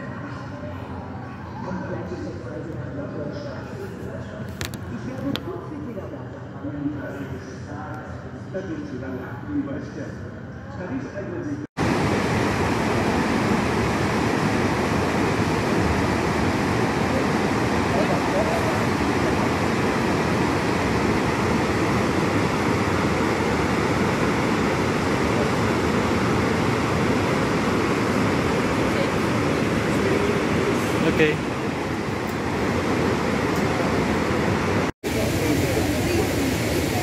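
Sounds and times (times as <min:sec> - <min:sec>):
waterfall roaring: 0:11.8 - 0:37.0.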